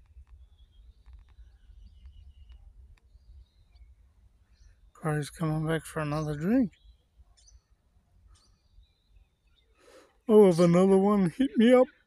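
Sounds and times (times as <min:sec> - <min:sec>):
birds chirping: 0:00.0 - 0:12.0.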